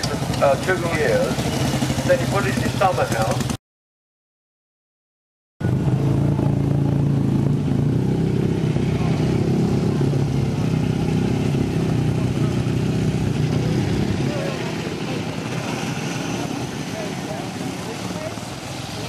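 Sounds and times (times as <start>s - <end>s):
motorcycle engine idling: 0.0s - 3.6s, 5.6s - 19.0s.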